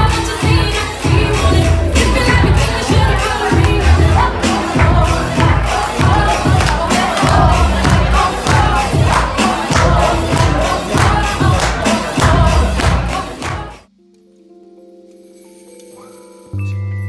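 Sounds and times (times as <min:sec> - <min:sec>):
crowd voices: 0:00.0 - 0:13.9
loud dance music with bass beat: 0:00.0 - 0:13.9.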